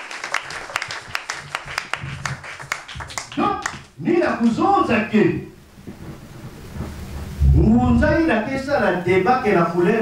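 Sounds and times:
steady hiss: 0.0 - 10.0
man speaking into microphone: 3.4 - 5.6, 7.4 - 10.0
low rumble: 5.6 - 8.7.

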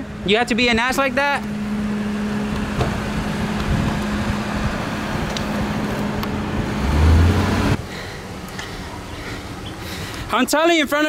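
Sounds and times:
car idling hum: 0.0 - 11.0
traffic noise: 0.0 - 11.0.

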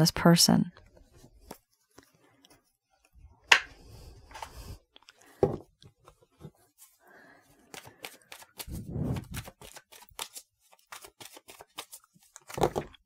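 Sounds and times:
cards being shuffled: 7.6 - 13.0.

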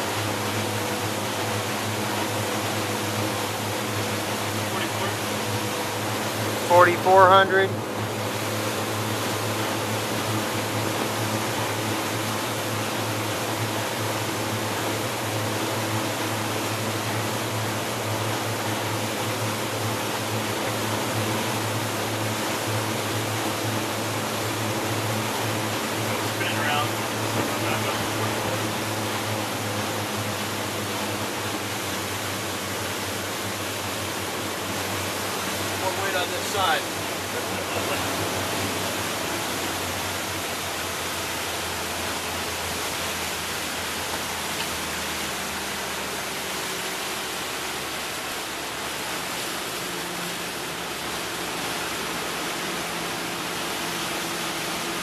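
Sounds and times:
boat engine running: 0.0 - 55.0
rush of wind and water: 0.0 - 55.0.

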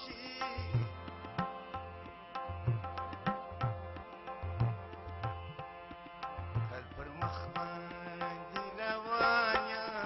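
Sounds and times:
harmonium playing chords: 0.0 - 10.0.

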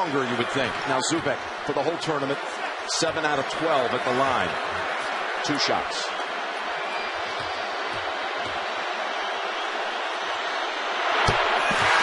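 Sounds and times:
arena crowd voices: 0.0 - 12.0
crowd cheering: 0.0 - 12.0.

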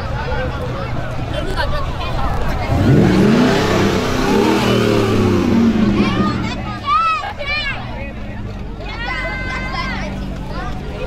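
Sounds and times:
truck engine revving past: 2.6 - 7.0.

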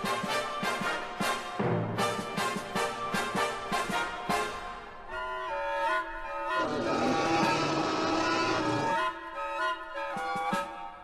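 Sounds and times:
background music: 0.0 - 11.0
lion roaring: 6.6 - 9.0.

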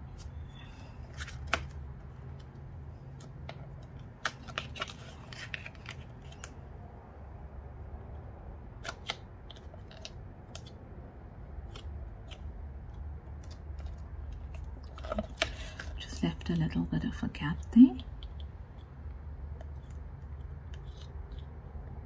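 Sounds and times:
cardboard and paper rustling: 0.0 - 6.5, 13.3 - 16.2
low steady hum: 0.0 - 22.0.

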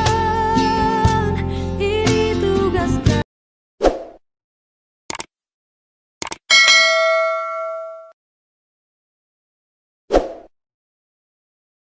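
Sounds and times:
brief swish: 3.8 - 4.2, 10.1 - 10.5
mouse clicks: 6.2 - 6.4
notification bell ding: 6.5 - 8.2.

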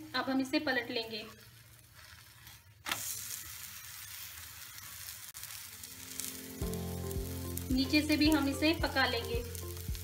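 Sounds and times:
batter sizzling in oil: 0.0 - 10.0
spatula flipping food: 0.2 - 10.0.

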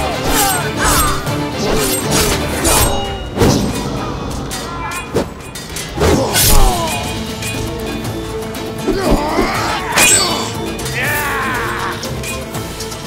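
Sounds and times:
swords and shields clashing: 0.0 - 7.6, 8.9 - 12.4
fighters shouting and grunting: 0.0 - 12.7
dramatic music score: 0.0 - 13.0.

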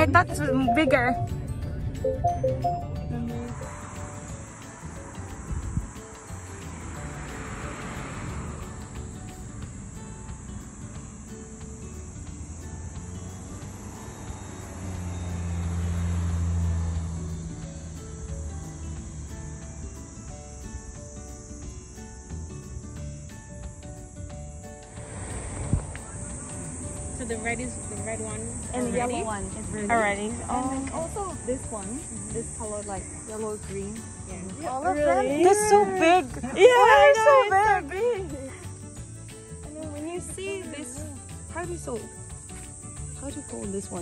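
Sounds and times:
faint background music: 0.0 - 44.0
high-pitched insect chorus: 3.3 - 44.0.

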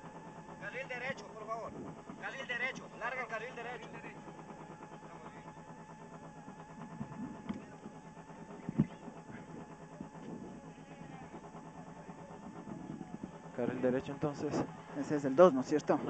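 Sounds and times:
car engine idling: 0.0 - 16.0.

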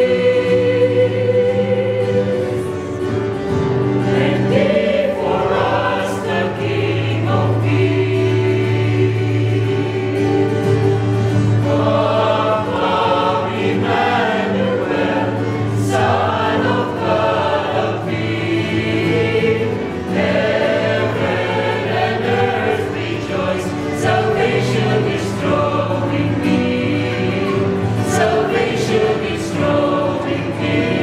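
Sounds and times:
group singing a carol: 0.0 - 31.0.

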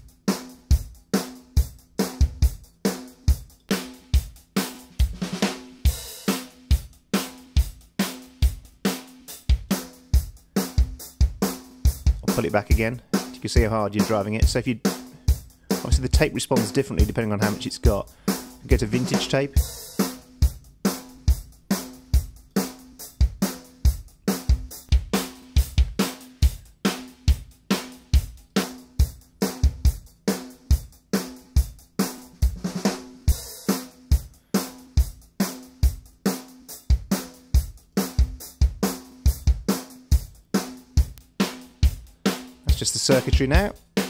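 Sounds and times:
drum kit beat: 0.0 - 44.0.

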